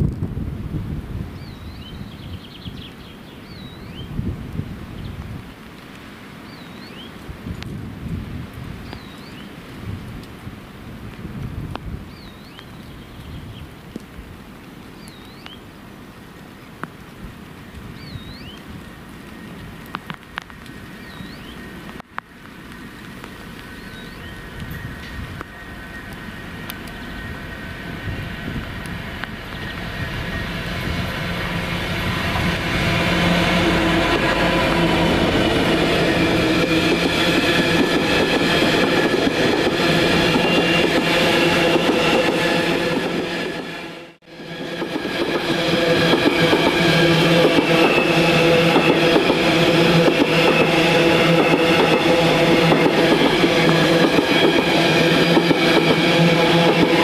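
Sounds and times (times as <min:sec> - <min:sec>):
train wheels clattering on rails: 0:23.2 - 0:43.8, 0:44.4 - 0:57.0
diesel locomotive engine running: 0:24.1 - 0:57.0.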